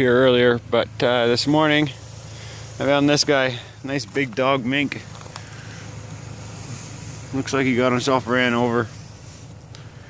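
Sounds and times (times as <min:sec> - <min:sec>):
even hiss: 0:00.0 - 0:10.0
low hum: 0:00.0 - 0:10.0.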